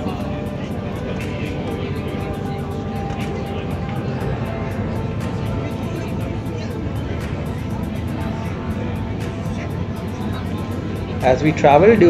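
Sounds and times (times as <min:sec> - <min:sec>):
background music with ticking beat: 0:00.0 - 0:12.0
ferry engines droning: 0:00.0 - 0:12.0.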